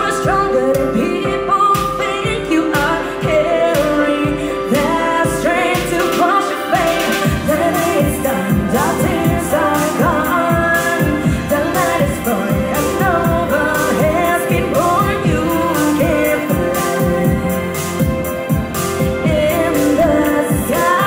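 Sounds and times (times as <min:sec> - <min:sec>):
backing music with steady beat: 0:00.0 - 0:21.0
woman singing into microphone: 0:00.0 - 0:21.0.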